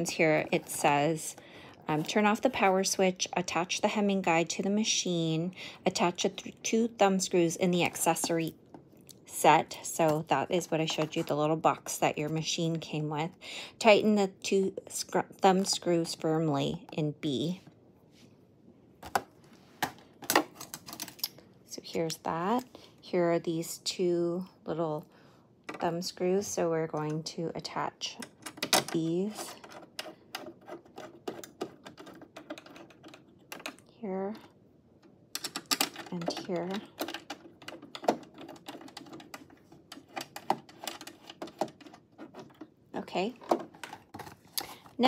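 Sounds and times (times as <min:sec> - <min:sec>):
plastic and metal parts clicking: 0:28.1 - 0:42.7, 0:43.3 - 0:44.9.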